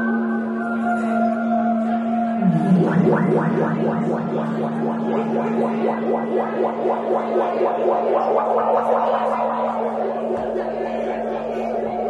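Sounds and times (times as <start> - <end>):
electronic drone low hum: 1.8 - 12.0
fast pulsing warble: 2.4 - 12.0.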